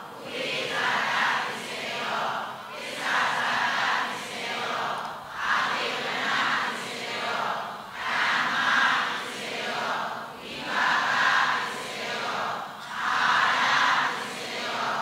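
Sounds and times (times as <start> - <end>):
congregation chanting in unison: 0.0 - 15.0.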